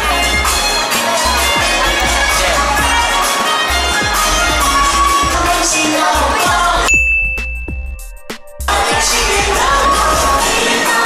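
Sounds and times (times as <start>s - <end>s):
background music: 0.0s - 11.0s
crowd noise: 0.0s - 11.0s
bell-like ding: 6.9s - 8.3s.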